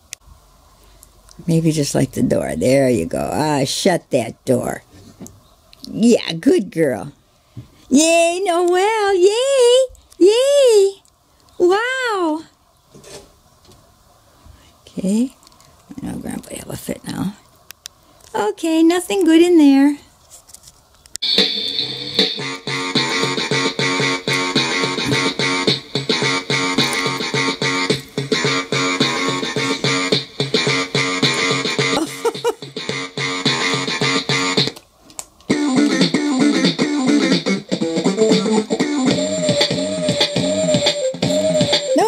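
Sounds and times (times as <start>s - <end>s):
electronic toy drum pad tune: 21.2s - 34.8s, 35.5s - 42.0s.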